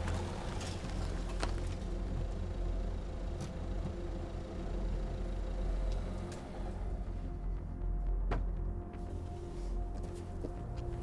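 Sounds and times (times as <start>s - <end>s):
van engine running: 0.0s - 8.3s.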